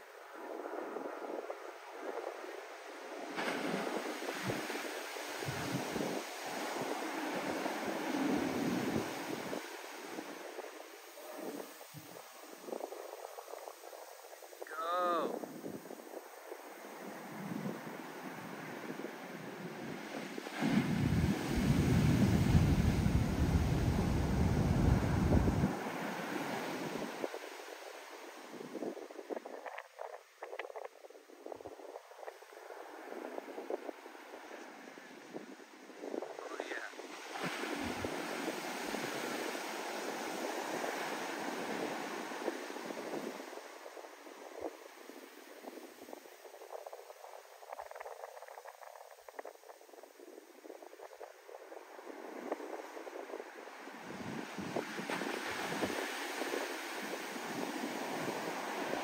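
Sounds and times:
foam washing up sand: 0.0 - 59.0
waves breaking on shore: 0.0 - 59.0.

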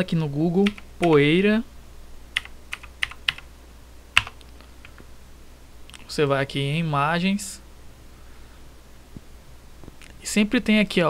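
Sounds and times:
computer keyboard typing: 0.6 - 1.2, 2.4 - 3.5, 4.2 - 5.0.

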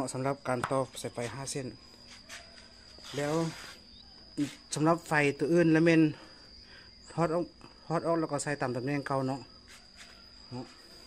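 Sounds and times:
high-pitched insect trill: 0.0 - 11.0
person speaking: 3.0 - 3.7.

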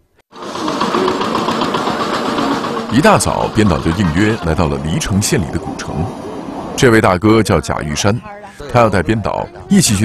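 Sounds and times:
busy street market: 0.3 - 10.0
steady mechanical rattle: 0.4 - 5.1.

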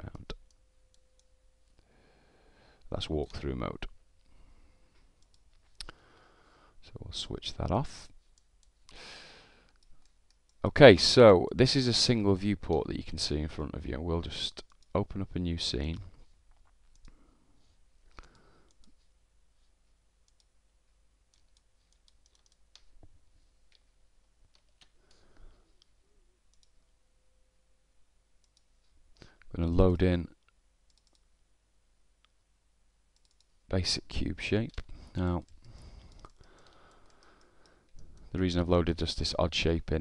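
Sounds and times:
faint computer mouse clicks: 5.2 - 6.0, 16.6 - 17.2, 20.3 - 20.5, 21.3 - 23.0, 25.8 - 26.9, 30.4 - 31.3, 33.2 - 33.5, 34.7 - 38.3.

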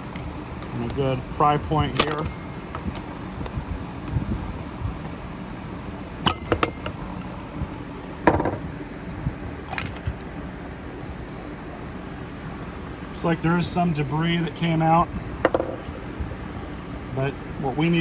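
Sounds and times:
sharp clicks and clinks: 1.9 - 2.8, 6.2 - 7.0.

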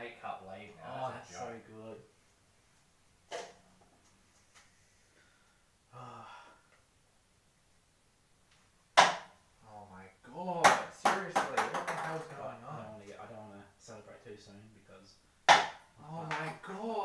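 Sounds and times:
ping-pong balls knocking: 10.7 - 12.4
man exclaiming: 16.0 - 17.0.

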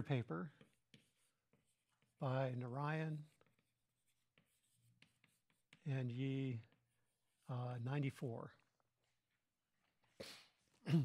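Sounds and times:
man talking: 0.0 - 0.5, 2.2 - 3.3, 5.8 - 6.7, 7.5 - 8.6
chalk writing on a blackboard: 0.0 - 10.8.

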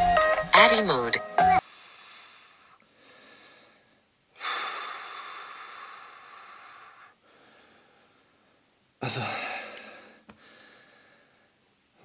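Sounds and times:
man breathing out heavily: 1.6 - 8.6, 9.2 - 11.6.

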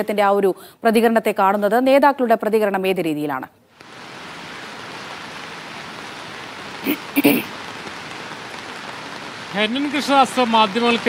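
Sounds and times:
steady rain hiss: 3.7 - 11.0.

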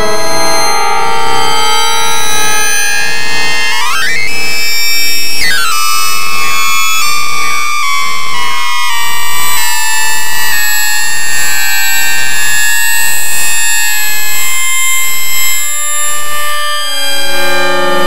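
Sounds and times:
electronic synthesizer tones: 0.0 - 8.0, 16.4 - 18.0.

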